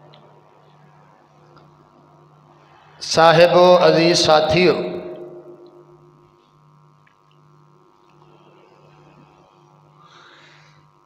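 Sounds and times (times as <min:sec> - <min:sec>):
public-address system hum: 0:00.1 - 0:06.9
speech over loudspeakers: 0:03.0 - 0:05.7.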